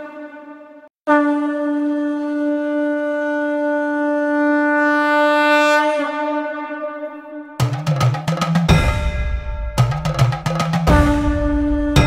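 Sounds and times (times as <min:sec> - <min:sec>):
conch shell blown: 0:00.0 - 0:07.8, 0:10.8 - 0:12.0
drums: 0:07.6 - 0:12.0.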